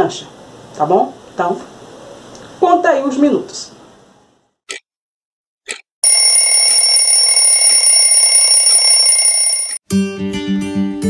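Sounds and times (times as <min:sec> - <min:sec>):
alarm clock ticking: 0:05.7 - 0:09.8
alarm bell ringing: 0:06.0 - 0:09.8.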